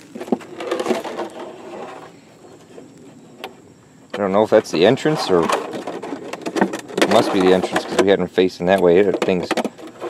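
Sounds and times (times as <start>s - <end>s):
plastic jug crinkling: 0.0s - 3.1s, 4.2s - 10.0s.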